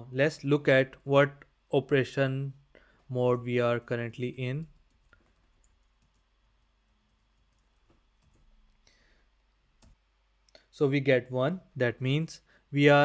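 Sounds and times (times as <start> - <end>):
computer keyboard typing clicks: 4.7 - 8.5.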